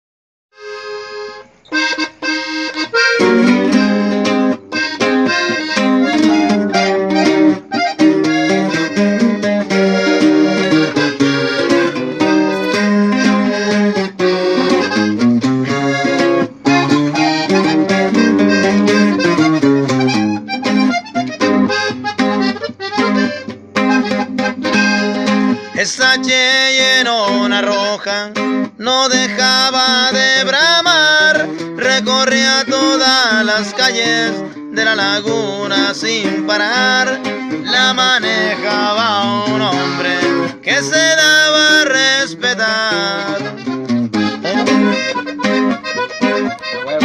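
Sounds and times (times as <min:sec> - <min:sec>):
accordion melody: 0:00.5 - 0:47.0
guitar: 0:00.5 - 0:47.0
bass line: 0:01.7 - 0:26.5, 0:35.2 - 0:47.0
person singing: 0:24.6 - 0:47.0.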